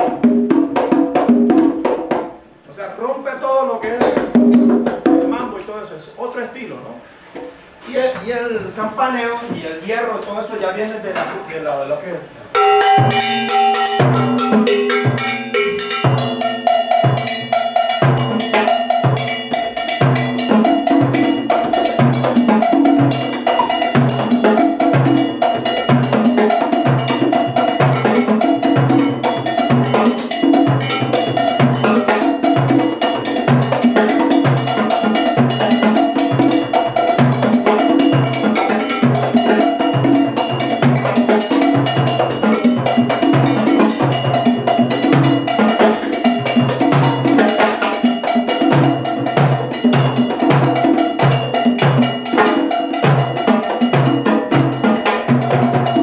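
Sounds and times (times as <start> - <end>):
sharp drum strokes: 3.8 - 5.7, 12.5 - 56.0
cowbell pattern: 12.5 - 56.0.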